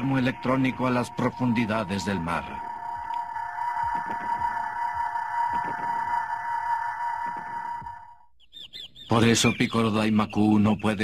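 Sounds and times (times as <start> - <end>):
sonar-like hum: 0.0 - 8.4.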